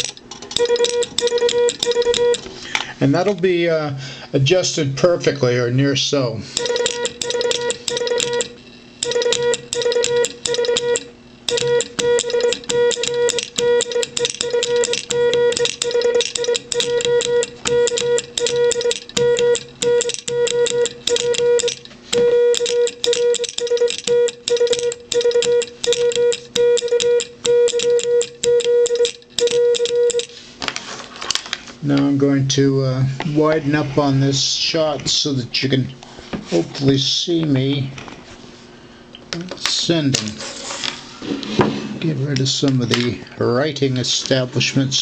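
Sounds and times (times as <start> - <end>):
telegraph key clicks: 0.0 - 2.4, 6.6 - 21.9, 22.5 - 30.3
morse code beeping: 0.0 - 2.5, 6.6 - 30.4.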